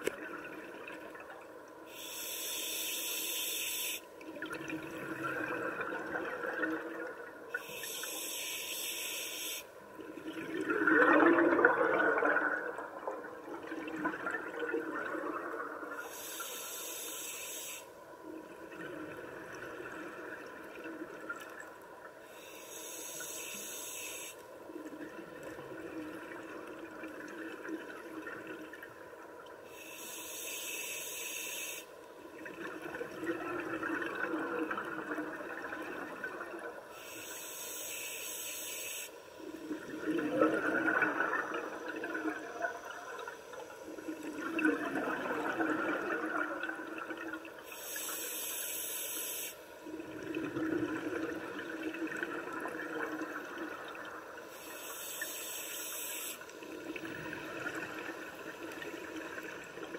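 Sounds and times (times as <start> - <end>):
scuba regulator inhalation hiss: 1.9 - 4.1, 7.6 - 9.7, 16.0 - 18.0, 22.2 - 24.4, 29.7 - 31.9, 36.9 - 39.3, 47.6 - 49.8, 54.4 - 56.8
exhaled air bubbling: 4.2 - 8.4, 9.8 - 17.0, 32.3 - 37.0, 39.4 - 48.2, 49.8 - 55.0, 55.9 - 59.9.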